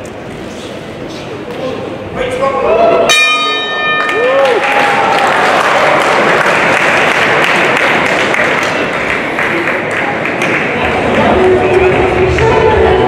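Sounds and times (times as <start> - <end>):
boxing ring bell: 3.1 - 4.5
crowd applause: 4.0 - 12.8.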